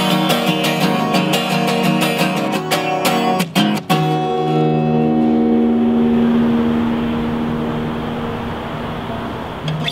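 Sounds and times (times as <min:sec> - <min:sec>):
acoustic guitar chord ringing: 0:00.0 - 0:09.9
open air background noise: 0:00.0 - 0:09.9.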